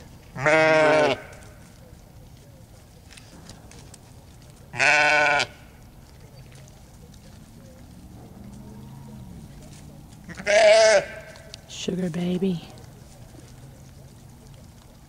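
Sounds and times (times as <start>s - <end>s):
sheep bleating: 0.4s - 1.4s, 4.7s - 5.6s, 10.2s - 11.5s.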